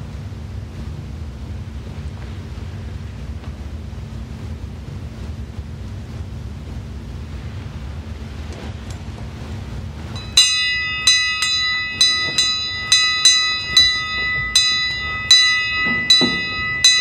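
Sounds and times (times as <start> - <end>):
bell ringing on a high note: 10.2 - 17.0.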